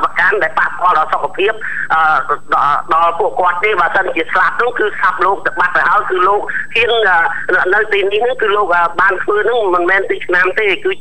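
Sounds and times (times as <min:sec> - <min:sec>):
person talking: 0:00.0 - 0:11.0.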